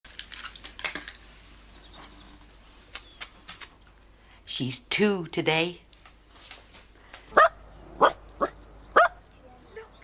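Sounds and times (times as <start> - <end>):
low room hum: 0.1 - 10.0.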